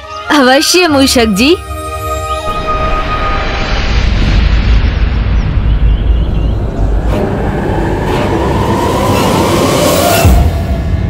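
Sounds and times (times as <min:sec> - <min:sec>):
rising tones: 0:01.6 - 0:11.0
dramatic hit: 0:02.0 - 0:07.5
deep booming rumble: 0:02.4 - 0:11.0.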